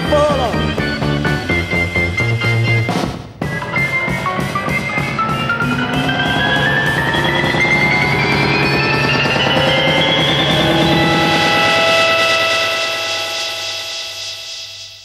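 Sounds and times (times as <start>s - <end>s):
psychedelic rock band recording: 0.0s - 14.9s.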